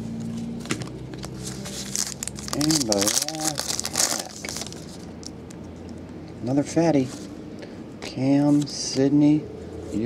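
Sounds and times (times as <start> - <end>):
foil wrapper crinkling: 1.2 - 5.3.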